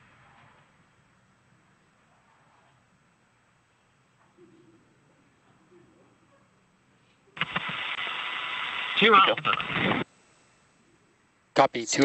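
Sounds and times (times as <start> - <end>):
radio static hiss: 7.0 - 12.0
person speaking over radio: 8.9 - 10.0.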